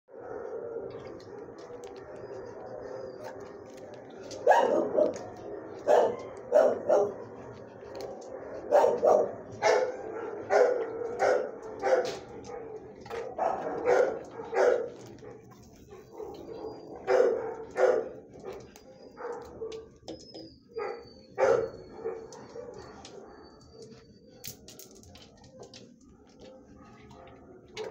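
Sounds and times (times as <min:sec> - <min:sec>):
dog barking: 0:04.2 - 0:19.9, 0:20.8 - 0:23.6, 0:26.2 - 0:27.9.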